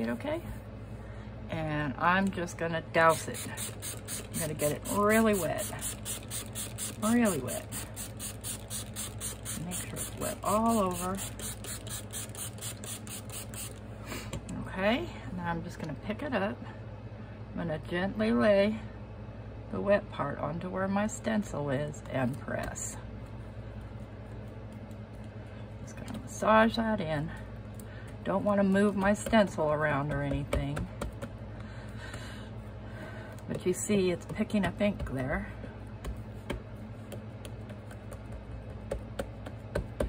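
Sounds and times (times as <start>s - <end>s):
air conditioner humming: 0.0s - 40.0s
spray bottle spritzing: 10.9s - 13.8s.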